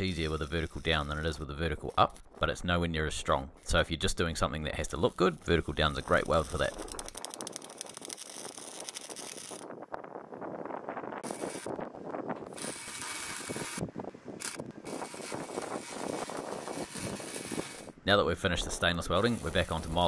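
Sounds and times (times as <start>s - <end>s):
welding arc crackling: 0.0s - 2.6s, 4.8s - 9.8s, 11.2s - 11.8s, 12.4s - 20.0s.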